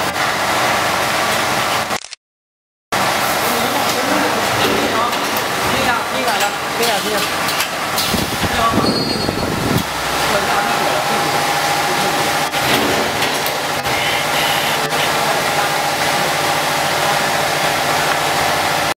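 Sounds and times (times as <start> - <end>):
sharp mechanical clicks: 2.0 - 2.2
machinery motor hum: 3.0 - 8.8, 9.4 - 18.9.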